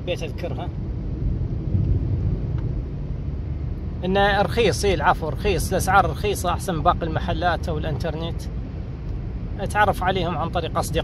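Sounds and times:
car engine and tyre noise: 0.0 - 11.0.

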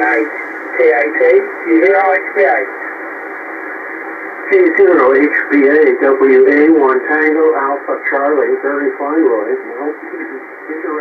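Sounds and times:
man's voice over radio: 0.0 - 2.8, 4.4 - 11.0
shortwave receiver hiss: 0.0 - 11.0.

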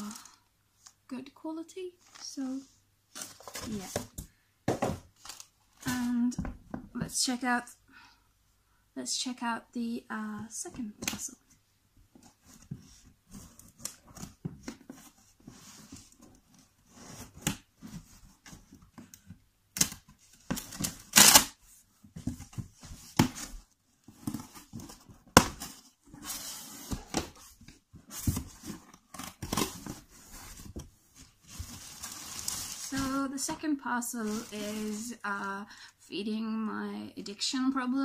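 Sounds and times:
packaging tearing and rustling: 31.5 - 33.1.

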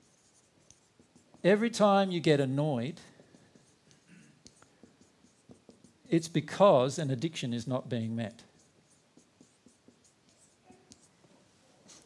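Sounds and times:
marker ticking on whiteboard: 0.1 - 2.2, 2.8 - 6.2, 8.3 - 11.1.

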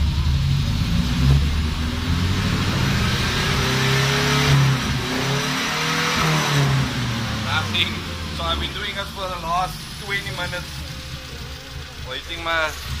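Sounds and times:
car engine revving: 0.0 - 13.0.

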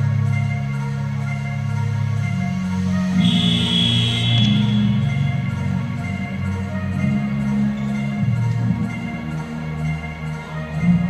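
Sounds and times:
background music with low notes: 0.0 - 11.0
high held tone: 3.2 - 5.6.

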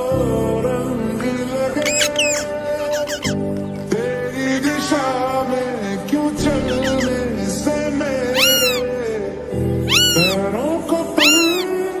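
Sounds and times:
meow-like calls: 1.8 - 3.4, 6.5 - 7.2, 8.4 - 9.0, 9.8 - 10.5, 11.2 - 11.8.

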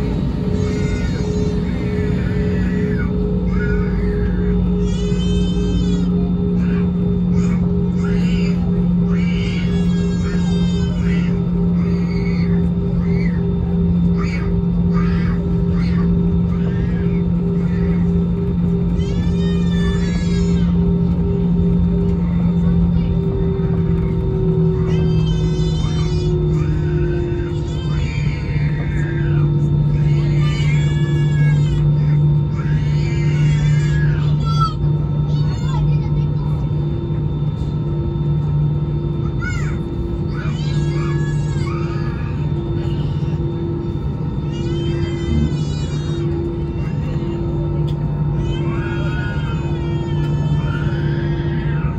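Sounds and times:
aircraft engines humming: 0.0 - 51.9.

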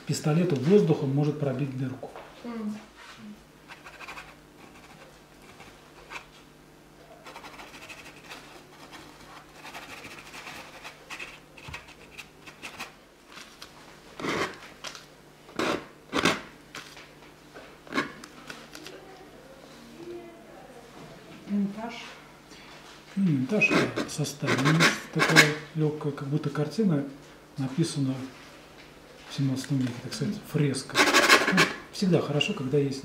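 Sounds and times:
paintbrush scrubbing canvas: 3.7 - 6.3, 7.2 - 12.9.

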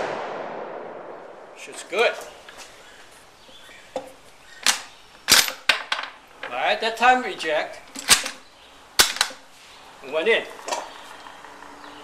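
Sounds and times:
rifle bolt metallic clicks: 8.0 - 8.4.

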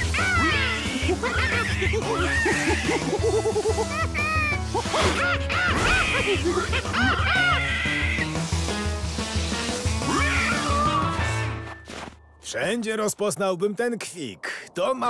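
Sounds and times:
cartoon pig squealing: 0.0 - 3.2, 4.0 - 8.4, 10.0 - 11.2.

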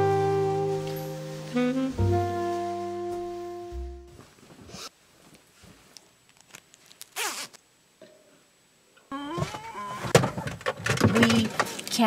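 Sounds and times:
zipper pulled: 6.4 - 7.6.

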